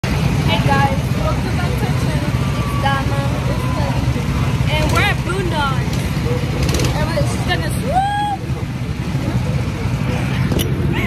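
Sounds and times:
girls talking: 0.5s - 8.6s.

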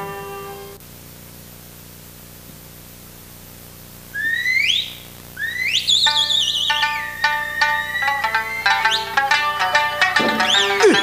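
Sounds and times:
high flute sliding upward: 5.4s - 9.2s, 10.2s - 11.0s
plucked string notes: 6.1s - 11.0s.

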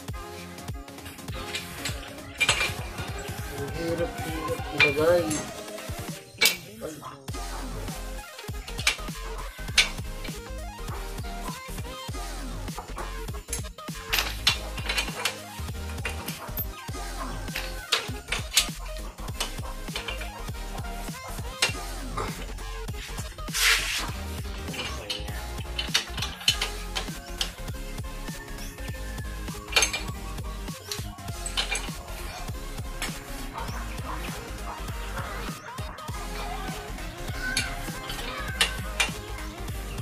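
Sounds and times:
background music: 0.0s - 40.0s
chain rattle: 0.9s - 5.7s, 6.4s - 6.8s, 8.2s - 11.0s, 12.7s - 39.2s.

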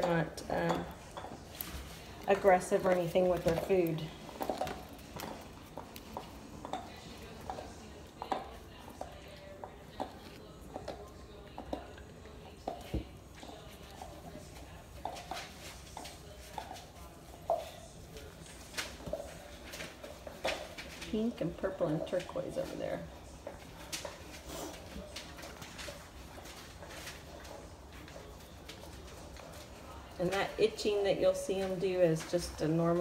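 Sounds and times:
paws scratching pen wall: 1.0s - 22.0s.

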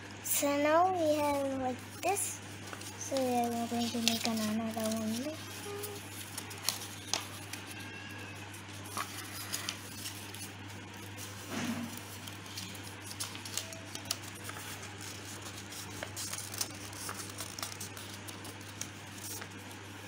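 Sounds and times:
steady low hum: 0.0s - 20.0s
paper crinkling and folding: 0.4s - 20.0s.

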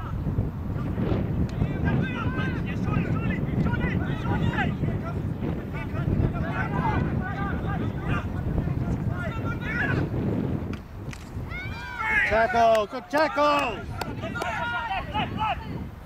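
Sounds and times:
wind rumbling on microphone: 0.0s - 16.0s
distant voices shouting: 1.5s - 10.1s, 11.4s - 15.9s.

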